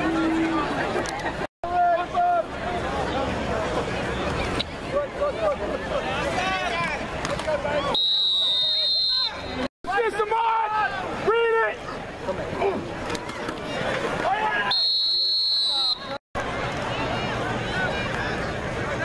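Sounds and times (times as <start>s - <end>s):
spectators talking and shouting: 0.0s - 19.0s
referee's whistle blast: 7.9s - 9.6s, 14.7s - 16.1s.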